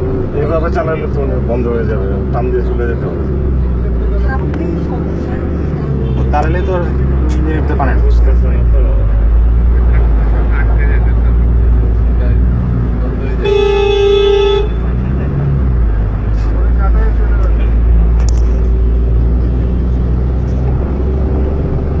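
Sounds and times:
car horn honk: 13.4 - 15.0.

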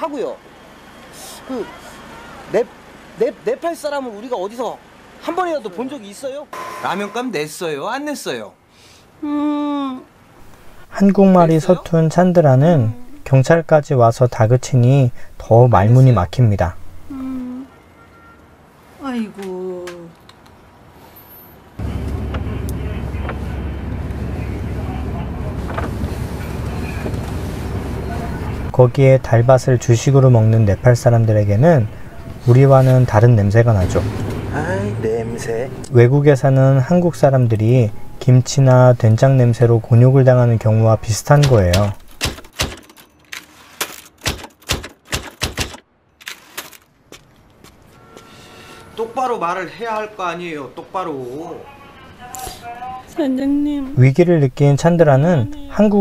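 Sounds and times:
car engine and road rumble: 20.4 - 46.0
typewriter clacking: 41.4 - 43.0, 44.0 - 45.8.

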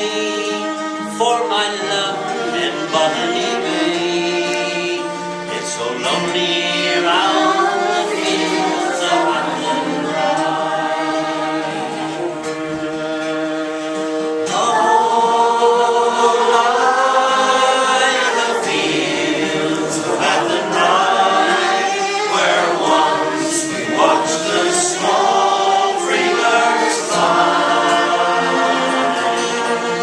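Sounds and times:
fiddle: 0.0 - 30.0
men singing folk ballad: 0.0 - 30.0
strummed acoustic guitar: 0.0 - 30.0.

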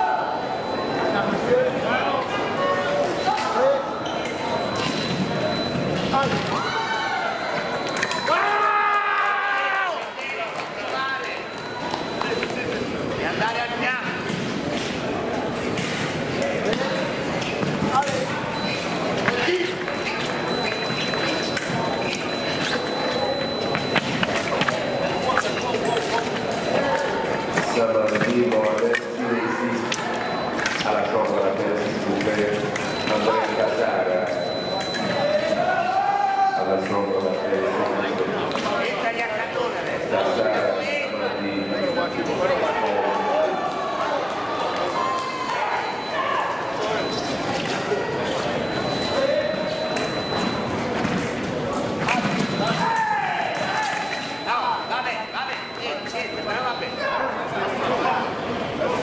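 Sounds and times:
people talking and calling out: 0.0 - 59.0.

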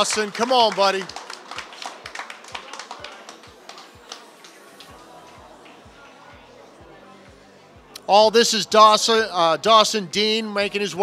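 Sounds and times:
people clapping: 0.0 - 6.0.

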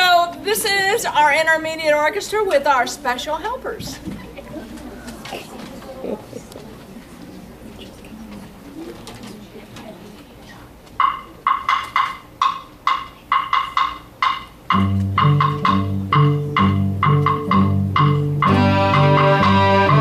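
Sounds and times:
metronome ticking: 11.0 - 20.0
string orchestra playing: 18.4 - 20.0.

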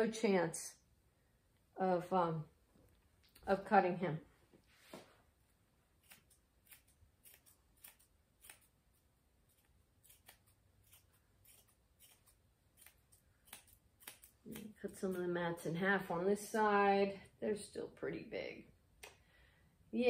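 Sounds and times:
scissors snipping hair: 6.0 - 15.2.

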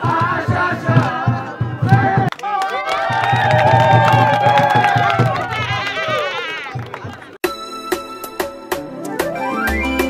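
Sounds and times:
group singing: 0.0 - 2.3
hands clapping in time: 1.9 - 7.4.

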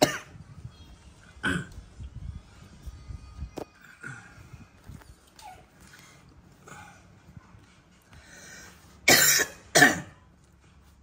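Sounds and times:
person coughing: 9.1 - 10.2.

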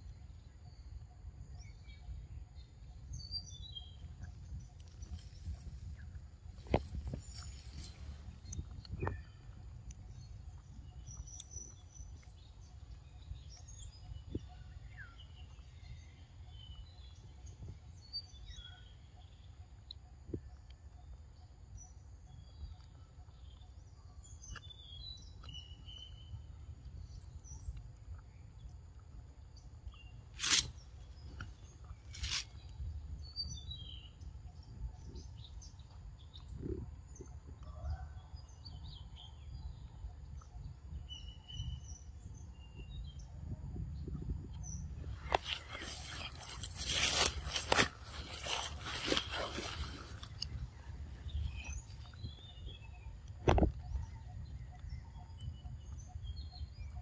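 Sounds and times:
bird chirps: 44.0 - 57.0.

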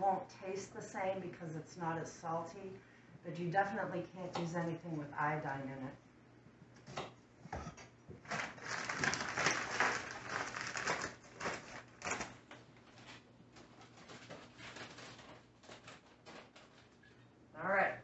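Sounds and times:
paper bag rustling: 8.2 - 17.0
granules pouring: 8.3 - 12.3.

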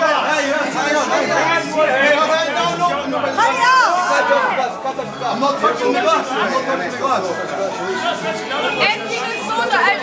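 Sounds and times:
group chatter: 0.0 - 10.0.

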